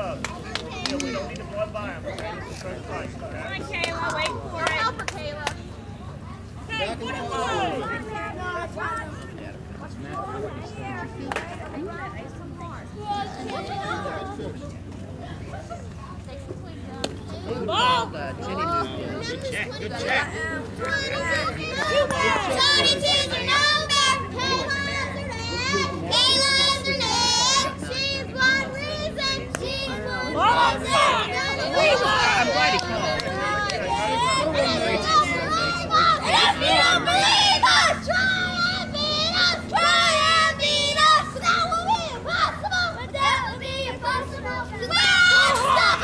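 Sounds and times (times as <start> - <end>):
girls shouting and cheering: 6.4 - 9.0, 20.0 - 46.0.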